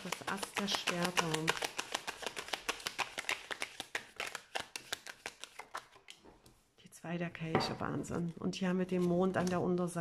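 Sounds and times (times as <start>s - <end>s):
cards being shuffled by hand: 0.0s - 6.2s.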